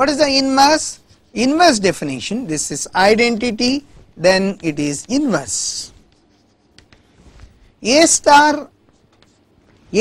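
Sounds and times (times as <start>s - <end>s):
chalk tapping and scratching: 4.4s - 7.5s, 8.8s - 9.9s.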